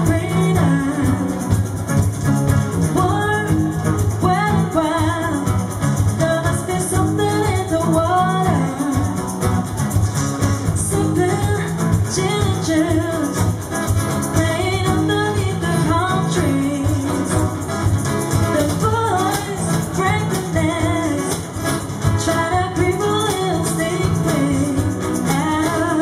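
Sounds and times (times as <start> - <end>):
woman singing: 0.0 - 10.0, 10.6 - 26.0
cajon beat: 0.0 - 26.0
strummed acoustic guitars: 0.0 - 26.0.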